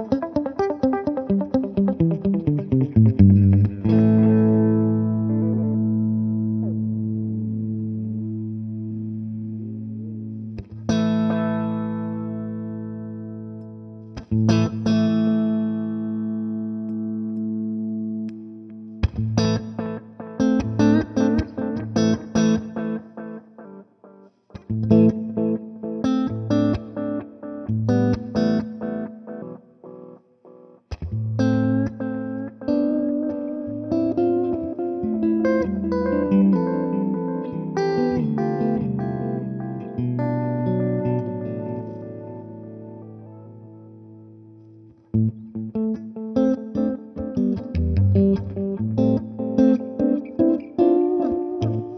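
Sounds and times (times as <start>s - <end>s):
electric guitar with delay: 0.0s - 51.9s.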